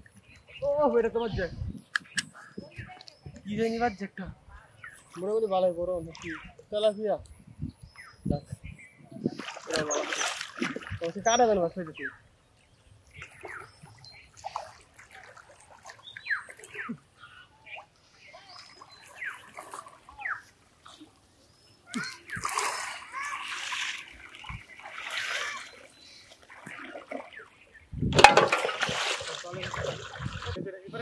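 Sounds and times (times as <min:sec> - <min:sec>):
water splashing and sloshing: 0:04.7 - 0:07.0, 0:08.6 - 0:30.6.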